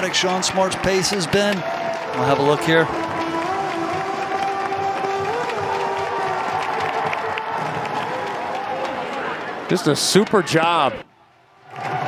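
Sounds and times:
crowd cheering and applauding: 0.0s - 10.9s, 11.5s - 12.0s.

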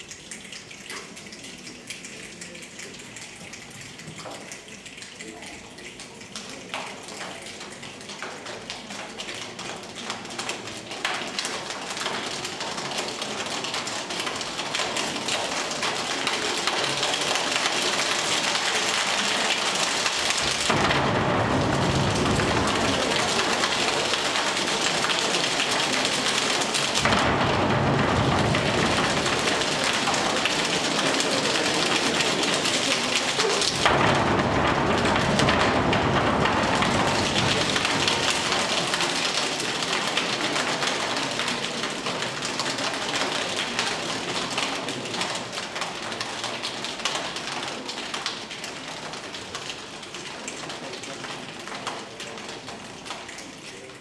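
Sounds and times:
hands rubbing like rain: 0.0s - 54.0s
slapping and stamping rumble: 18.9s - 40.8s.

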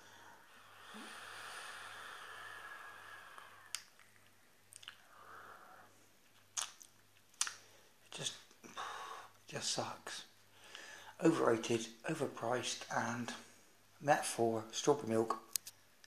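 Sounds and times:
breathy exhale: 0.0s - 3.7s, 5.0s - 6.0s, 10.6s - 11.2s
e-cigarette airflow hiss: 0.6s - 3.9s
lip smacks and mouth clicks: 3.6s - 5.1s, 6.2s - 7.7s.

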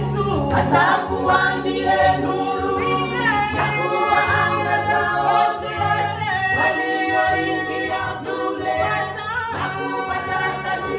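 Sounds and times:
women's choir singing: 0.0s - 10.9s.

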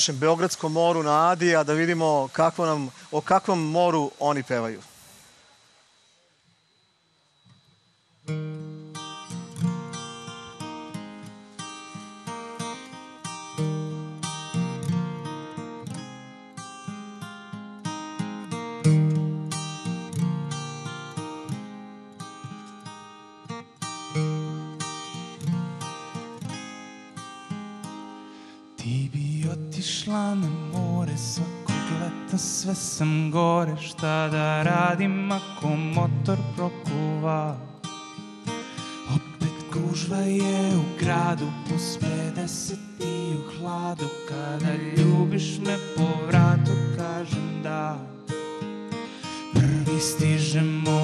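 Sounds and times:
acoustic guitar strumming: 0.0s - 5.9s, 7.4s - 51.0s
person singing: 28.8s - 37.9s, 38.8s - 48.5s, 49.1s - 51.0s.

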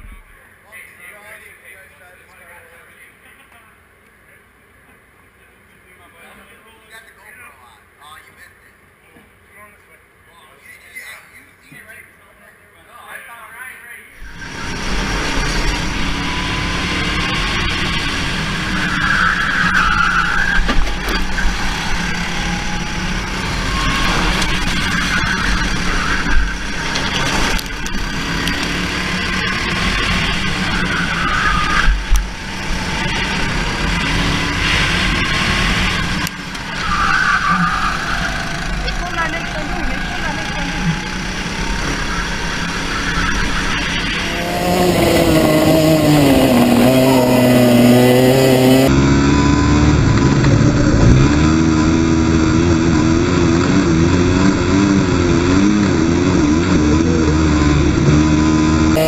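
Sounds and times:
go-kart engine revving: 14.2s - 59.0s.

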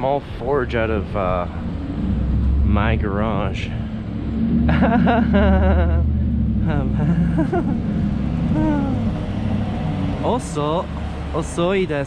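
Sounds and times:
street noise: 0.0s - 12.0s
wind rumble: 0.0s - 12.0s
person laughing: 4.6s - 9.2s
person speaking or humming: 8.5s - 9.2s.

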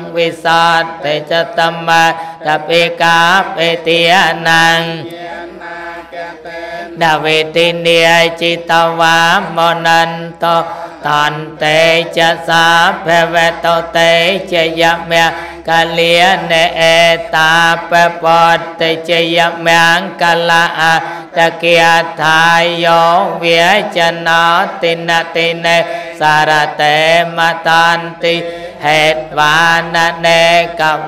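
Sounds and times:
monk chanting into microphone: 0.0s - 31.0s.

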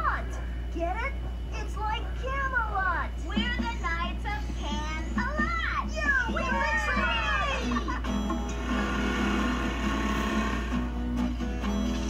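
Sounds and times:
music through television speaker: 0.0s - 12.0s.

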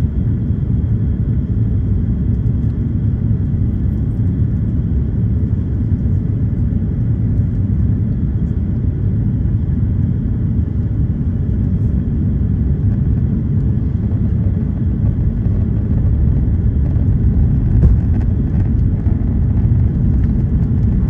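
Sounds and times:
jet engines and rushing air: 10.2s - 21.0s.

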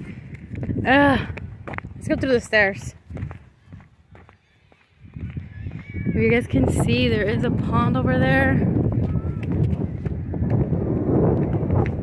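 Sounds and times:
footsteps on concrete: 0.0s - 7.0s, 8.6s - 12.0s
wind buffeting microphone: 0.0s - 12.0s.

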